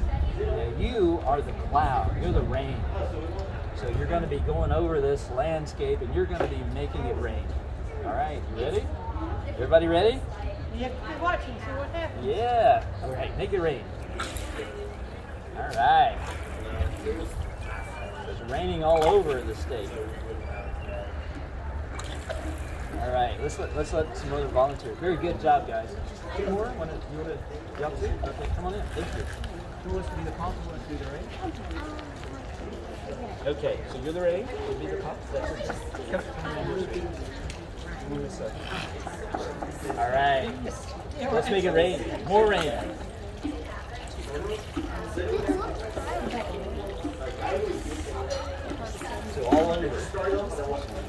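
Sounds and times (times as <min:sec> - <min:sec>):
children chattering: 0:07.1 - 0:51.0
water trickling from hose: 0:13.1 - 0:20.4, 0:21.1 - 0:51.0.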